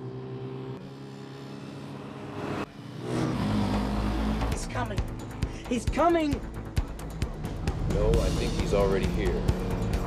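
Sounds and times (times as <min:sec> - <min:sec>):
truck and motorcycle engines droning: 0:00.0 - 0:10.0.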